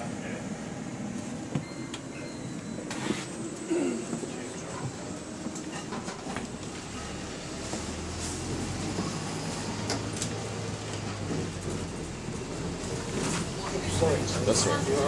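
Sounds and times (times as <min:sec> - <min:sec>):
bus engine hum: 0:00.0 - 0:15.0
rattles and clicks from bus body: 0:01.5 - 0:15.0
road noise: 0:03.1 - 0:15.0.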